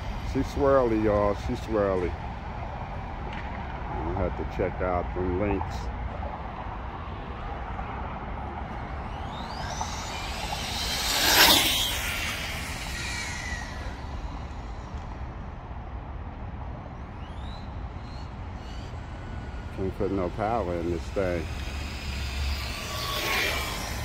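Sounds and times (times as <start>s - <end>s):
rc car rushing past: 0.0s - 3.6s, 5.7s - 15.8s, 17.0s - 24.0s
rc car motor whining: 6.4s - 15.6s, 17.0s - 24.0s.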